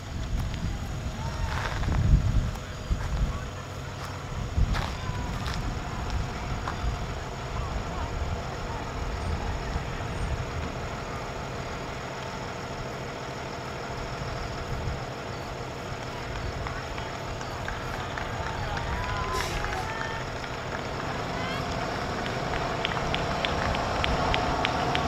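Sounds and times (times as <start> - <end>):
distant voices calling: 0.0 - 25.0
steady low rumble: 0.0 - 25.0.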